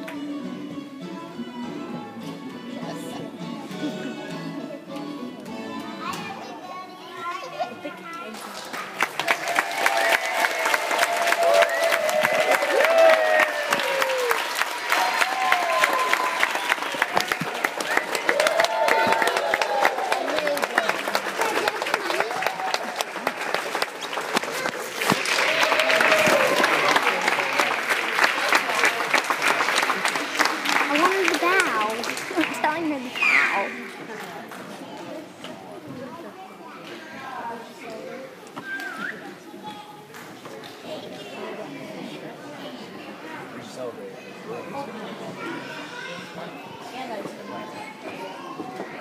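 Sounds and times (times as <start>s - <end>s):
quiet music: 0.0s - 6.4s
children singing and calling: 0.0s - 8.1s
crowd clapping: 8.3s - 35.0s.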